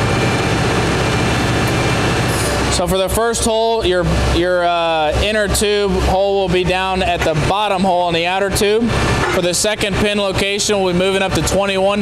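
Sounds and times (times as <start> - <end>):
deep engine hum: 0.0 - 12.0
hydraulic rushing noise: 8.8 - 10.4.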